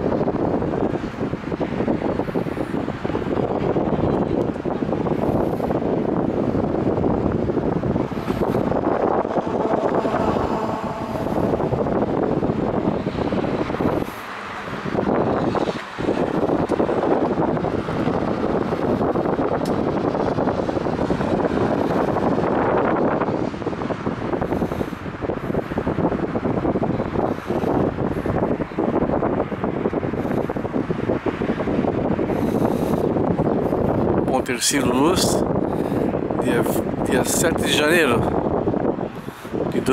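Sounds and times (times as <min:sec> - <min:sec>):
wind on microphone: 0:00.0 - 0:39.9.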